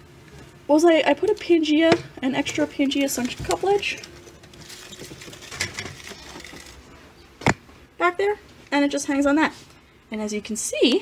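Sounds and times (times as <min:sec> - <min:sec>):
rustling and scraping: 0:02.4 - 0:07.8.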